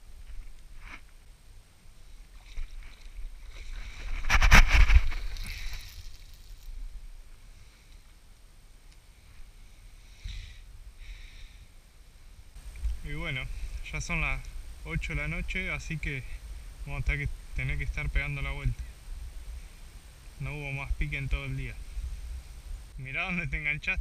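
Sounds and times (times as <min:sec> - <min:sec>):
fishing line whipping out: 0:02.4 - 0:06.6
faint short scrapes: 0:02.4 - 0:06.7.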